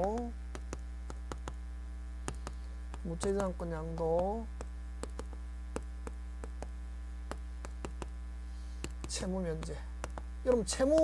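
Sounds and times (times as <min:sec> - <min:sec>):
electrical mains hum: 0:00.0 - 0:11.0
chalk writing on a chalkboard: 0:07.3 - 0:08.2.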